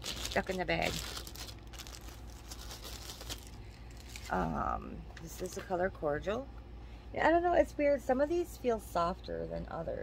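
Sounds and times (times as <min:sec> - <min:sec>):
plastic bag crinkling: 0:00.0 - 0:04.5.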